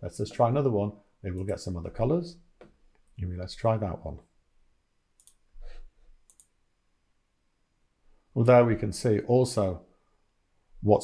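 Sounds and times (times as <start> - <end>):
computer mouse clicks: 5.2 - 5.4, 6.2 - 6.6.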